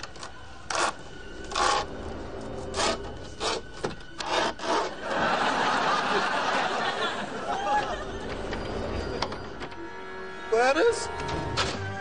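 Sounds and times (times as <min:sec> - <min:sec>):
studio audience laughter: 0:04.9 - 0:08.4.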